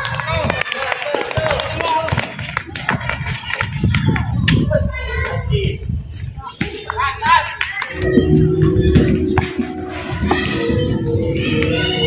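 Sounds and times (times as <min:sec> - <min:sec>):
feet and ball on concrete: 0:01.2 - 0:04.6, 0:06.2 - 0:08.0, 0:08.9 - 0:10.8.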